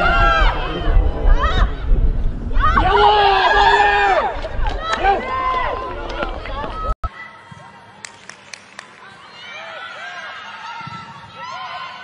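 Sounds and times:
low rumble: 0.0s - 6.4s
women shouting and cheering: 0.0s - 7.8s, 9.0s - 12.0s.

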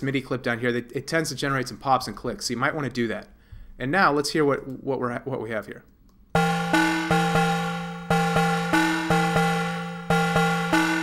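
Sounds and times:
glitchy electronic percussion groove: 6.4s - 11.0s.

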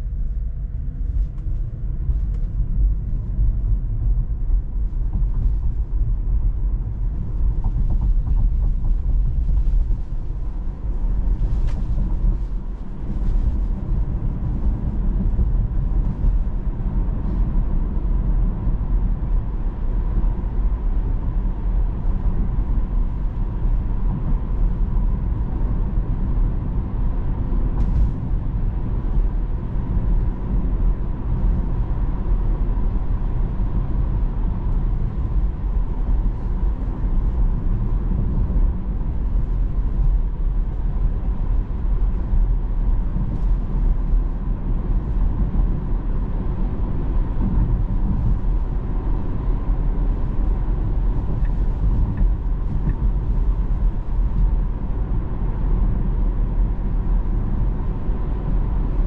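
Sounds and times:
road and tyre rumble in car: 0.0s - 59.0s.

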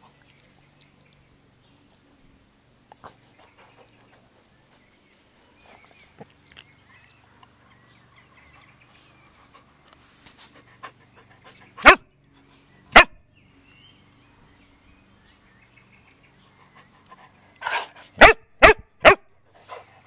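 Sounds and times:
dog panting: 10.4s - 12.0s, 19.6s - 20.0s
dog barking: 11.8s - 12.0s, 13.0s - 13.2s, 17.7s - 19.3s.

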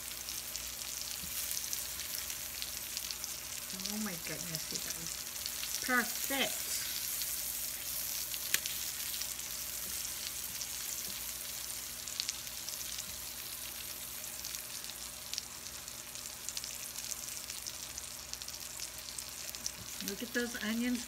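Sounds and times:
food sizzling on a griddle: 0.0s - 21.0s.

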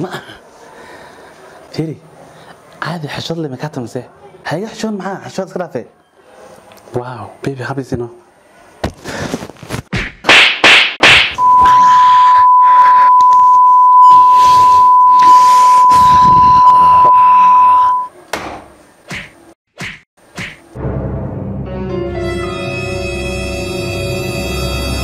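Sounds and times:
comedy slaps and whacks: 9.8s - 11.4s, 19.1s - 20.6s
high-pitched beep tone: 11.4s - 18.1s.

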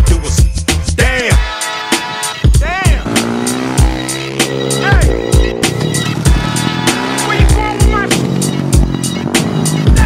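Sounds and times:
hip-hop beat: 0.0s - 10.0s
motorcycle engine at steady revs: 3.0s - 10.0s.

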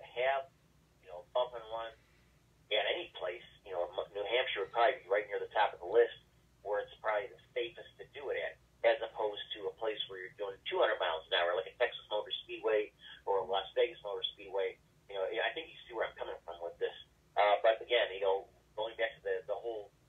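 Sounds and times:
man talking over telephone line: 0.0s - 0.4s, 1.0s - 2.0s, 2.7s - 19.9s.

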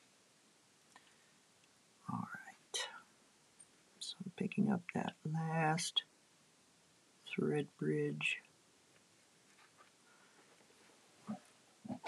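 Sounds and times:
breathy whisper: 2.1s - 3.1s.

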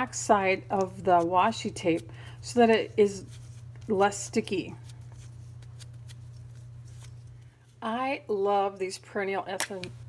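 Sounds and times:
steady low hum: 0.0s - 10.0s
powder pouch dabbing and rustling: 0.7s - 7.8s.

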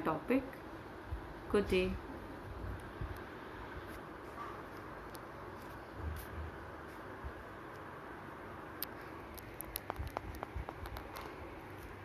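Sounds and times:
device handling clicks and taps: 8.8s - 11.3s.

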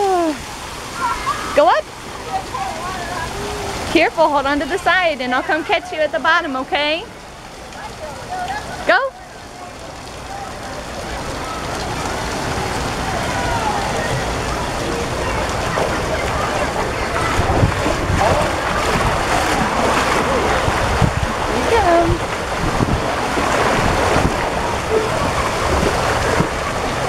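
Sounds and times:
distant children's voices: 0.0s - 4.0s, 7.1s - 22.0s, 23.9s - 27.0s
running and splashing water: 0.0s - 27.0s.

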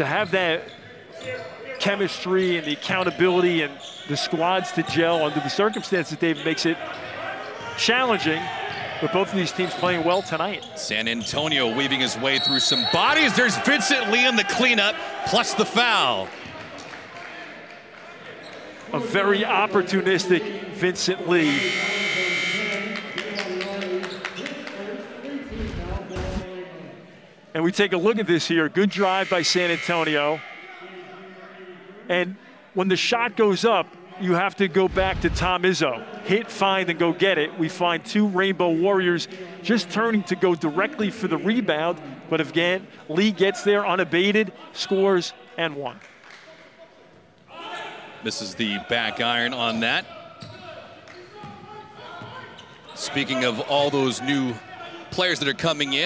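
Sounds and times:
players' voices: 0.0s - 56.0s.

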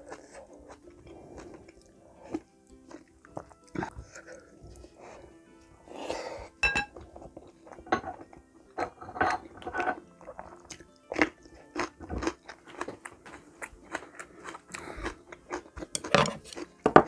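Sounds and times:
chili pepper crunching when chewed: 0.0s - 4.4s, 9.8s - 16.9s.

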